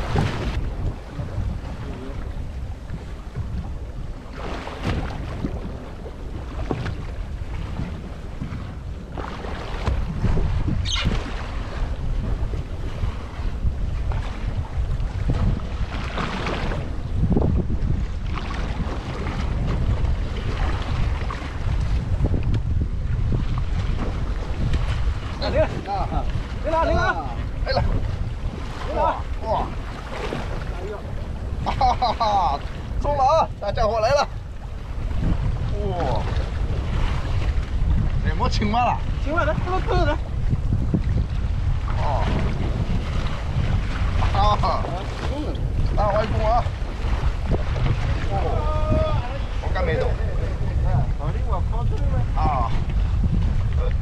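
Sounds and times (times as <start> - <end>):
waves against hull: 0.0 - 54.0
wind buffeting microphone: 0.0 - 54.0
people talking: 25.4 - 27.9, 28.9 - 29.7, 35.7 - 36.3, 42.0 - 42.4, 44.2 - 46.7, 48.2 - 52.8.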